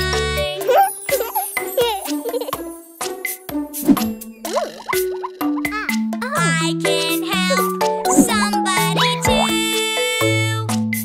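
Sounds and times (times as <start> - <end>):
bouncy children's song music: 0.0 - 11.0
child's voice: 5.6 - 10.7.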